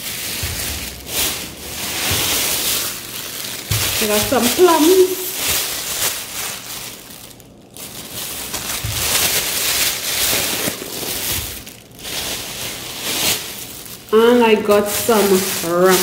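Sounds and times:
plastic bag crinkling: 0.0 - 16.0.

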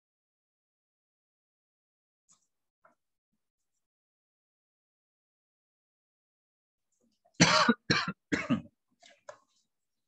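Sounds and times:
person coughing: 7.4 - 8.7.

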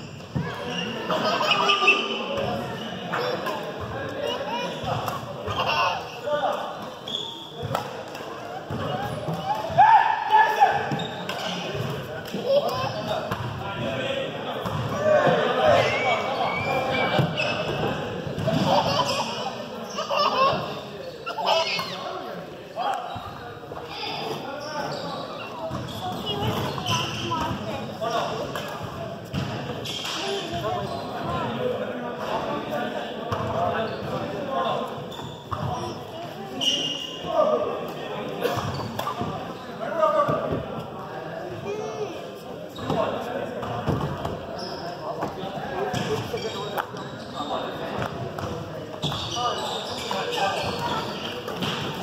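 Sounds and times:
voices talking and calling out: 0.0 - 52.0.

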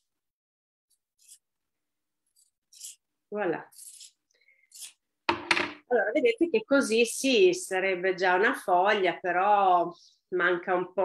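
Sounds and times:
shears knocking on tabletop: 5.3 - 5.8.

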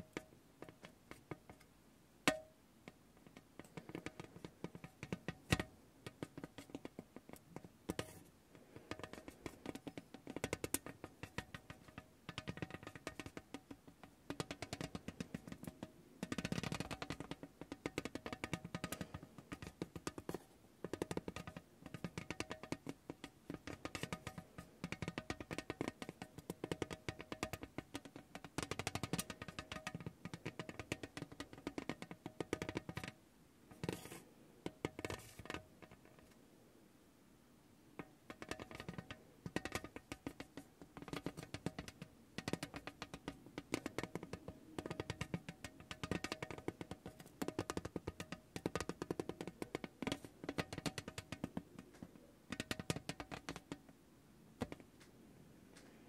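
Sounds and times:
massage ball clicking on tin tray: 0.0 - 1.7, 2.3 - 36.4, 38.0 - 54.0, 54.6 - 55.2.

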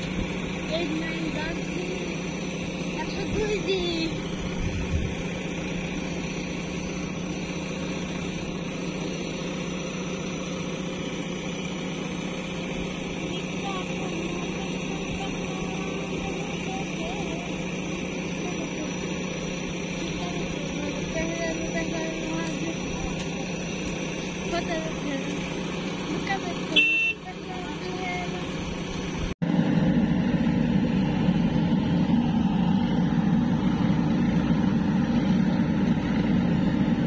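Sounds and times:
diesel engine running under load: 0.0 - 37.0.

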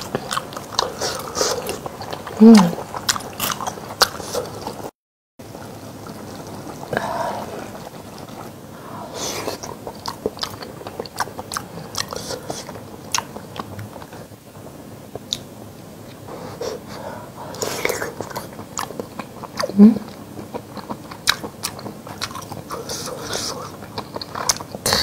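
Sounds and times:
close chewing with mouth smacks: 0.0 - 4.9, 9.4 - 14.3, 17.5 - 25.0.

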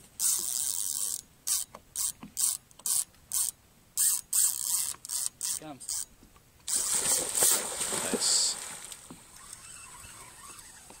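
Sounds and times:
fish splashing in water: 6.7 - 10.1.

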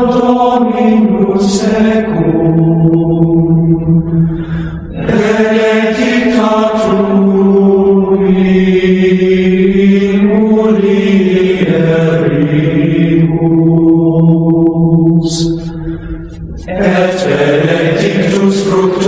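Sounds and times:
chant in long held notes: 0.0 - 19.0.

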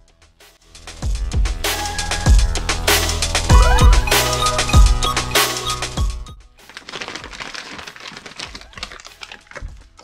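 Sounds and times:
electronic music with drum beat: 0.0 - 6.5
paper envelope crinkling: 6.6 - 10.0.

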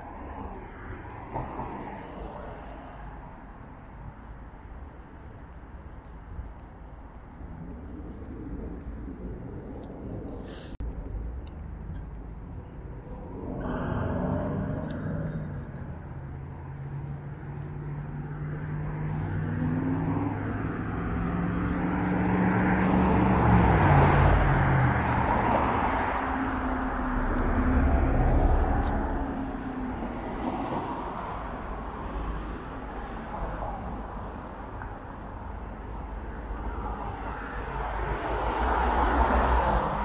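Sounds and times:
cars driving past: 0.0 - 40.0.

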